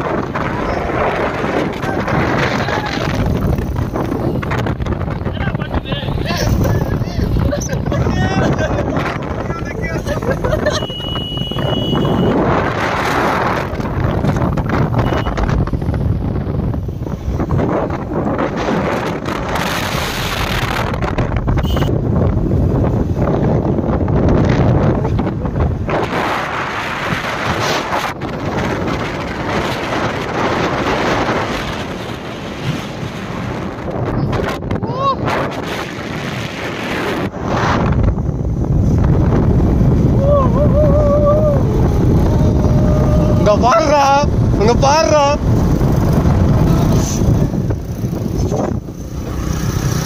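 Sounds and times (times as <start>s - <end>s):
wind rushing over microphone: 0.0s - 50.0s.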